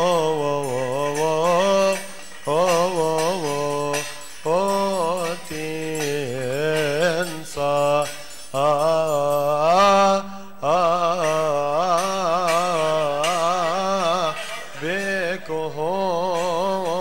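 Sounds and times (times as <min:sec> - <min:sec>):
men chanting a hymn: 0:00.0 - 0:17.0.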